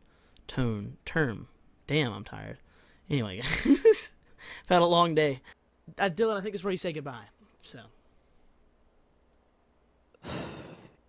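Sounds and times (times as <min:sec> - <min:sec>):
man sighing: 0:10.2 - 0:11.0.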